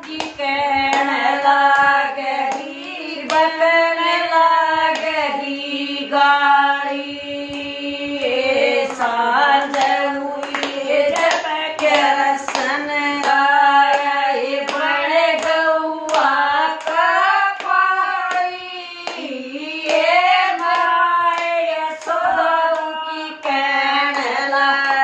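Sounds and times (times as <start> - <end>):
hand claps: 0.0 - 5.3, 6.8 - 25.0
women singing in unison: 0.0 - 25.0.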